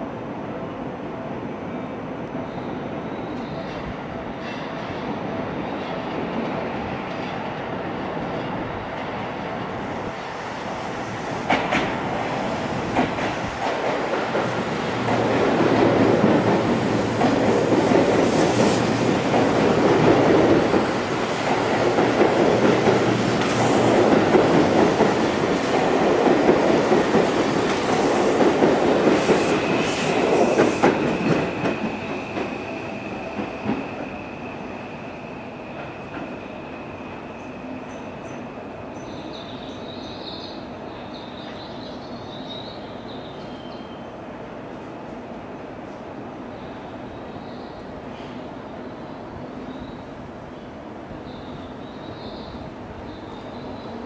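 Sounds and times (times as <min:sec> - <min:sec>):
electric train rolling: 0:05.4 - 0:38.7.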